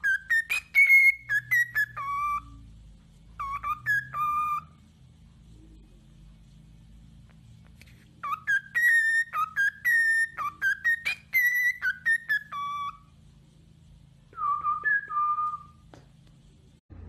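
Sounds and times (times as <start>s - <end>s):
cockatiel whistling: 0.0s - 2.6s, 3.3s - 4.8s, 8.2s - 13.1s, 14.3s - 15.8s.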